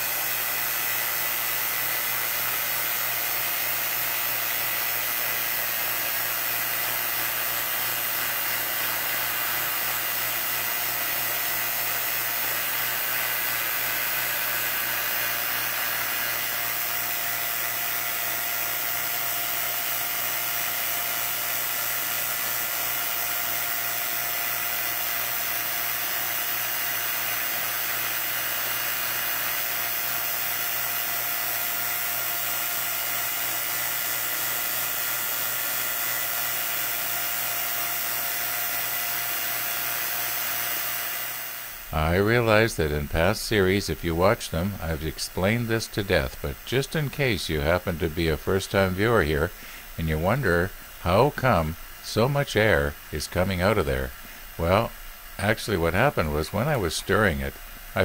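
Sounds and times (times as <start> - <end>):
vacuum pump running: 0.0 - 58.0.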